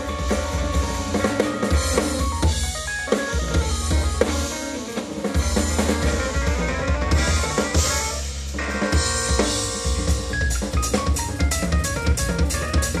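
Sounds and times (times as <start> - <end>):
drum kit beat: 0.0 - 13.0
keyboard notes: 0.0 - 13.0
deep bass line: 5.4 - 13.0.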